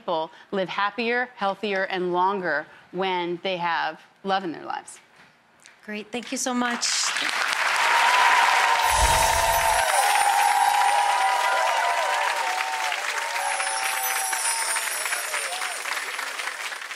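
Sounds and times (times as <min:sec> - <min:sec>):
audience applauding: 0:06.9 - 0:16.9.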